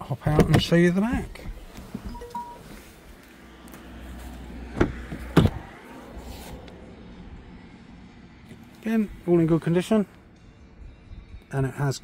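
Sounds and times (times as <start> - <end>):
car door clunks: 0.2 - 2.8, 4.7 - 5.7
faint beep: 2.1 - 2.7.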